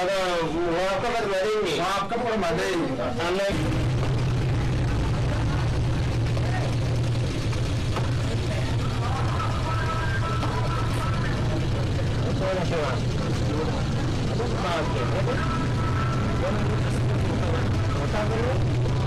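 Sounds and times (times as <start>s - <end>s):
faint voices of people: 0.0s - 19.0s
steady low street rumble: 0.0s - 19.0s.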